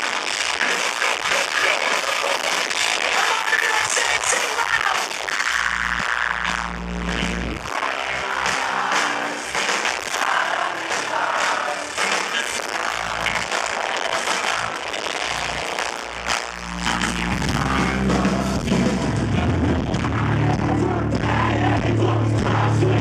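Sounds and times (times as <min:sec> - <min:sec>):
live rock band playing: 0:00.6 - 0:23.0.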